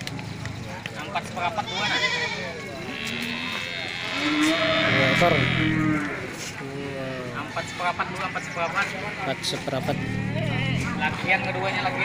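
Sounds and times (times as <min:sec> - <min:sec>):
cow mooing: 0:02.9 - 0:06.4.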